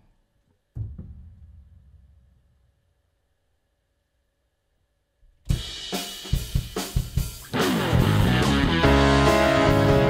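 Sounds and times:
low thump with ringing: 0.8 - 2.8.

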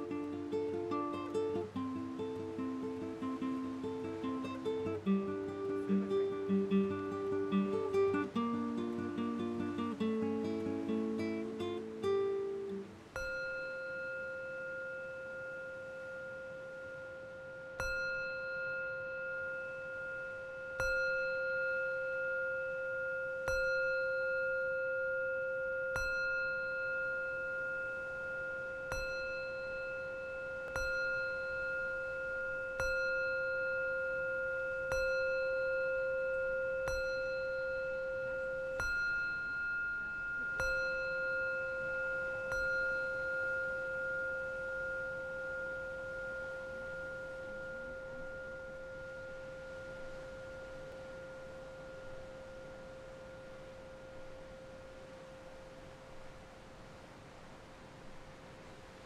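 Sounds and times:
metal singing bowls ringing: 13.1 - 56.9.

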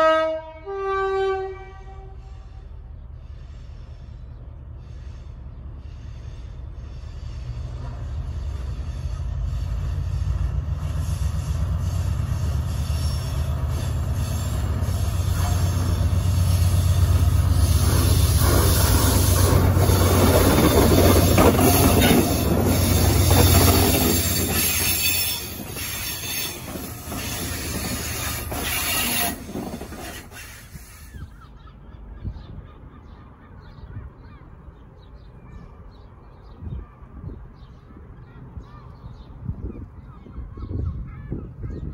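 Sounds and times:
diesel locomotive passing: 0.0 - 41.7
wheels squealing on rails: 2.2 - 31.8
wheels clicking over rail joints: 17.1 - 31.1.

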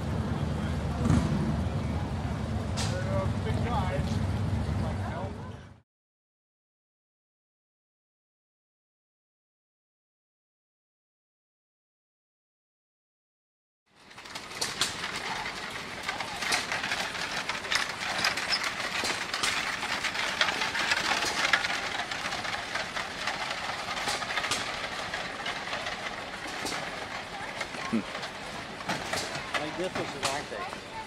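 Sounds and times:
horse hooves clopping: 14.0 - 31.0
wheels crunching on gravel: 14.0 - 31.0
people's voices: 14.8 - 31.0.

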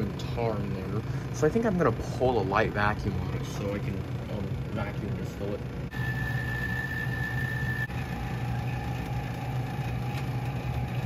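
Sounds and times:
electric motor humming: 0.0 - 11.0
high whine: 0.0 - 11.0.

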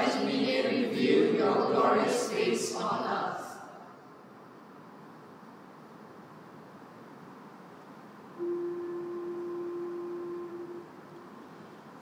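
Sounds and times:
steady pure pitch note: 8.4 - 11.6.

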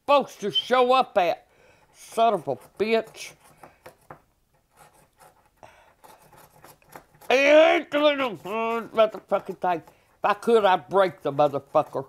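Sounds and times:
metal pick scraping plaster: 1.8 - 12.0.

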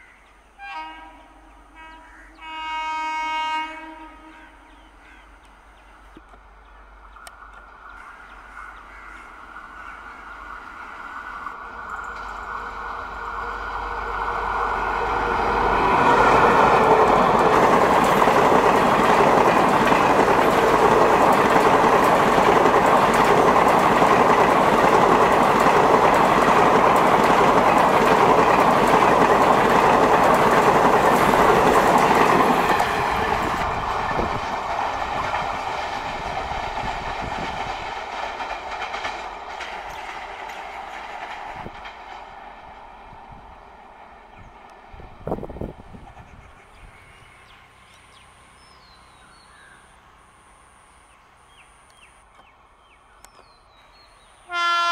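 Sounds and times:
train wheels running over rails: 9.5 - 46.6.

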